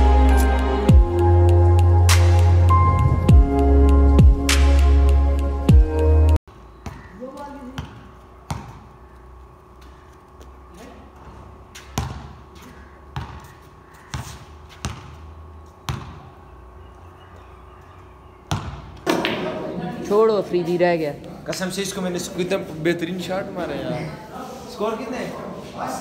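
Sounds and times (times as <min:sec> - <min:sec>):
basketball bouncing on concrete: 0:06.8 - 0:09.2, 0:11.2 - 0:15.3, 0:15.9 - 0:16.4, 0:18.5 - 0:19.5.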